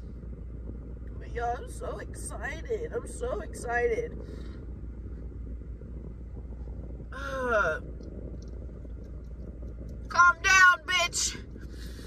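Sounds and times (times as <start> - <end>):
low rumble inside car: 0.0 - 12.0.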